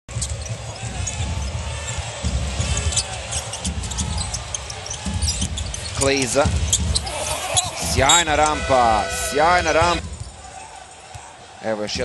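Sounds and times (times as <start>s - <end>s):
arena crowd noise: 0.1s - 12.0s.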